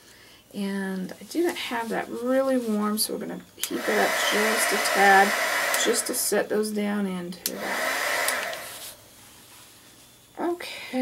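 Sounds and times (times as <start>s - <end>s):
faint room hiss: 0.0s - 11.0s
heat gun blowing air: 3.6s - 6.4s, 7.5s - 9.0s.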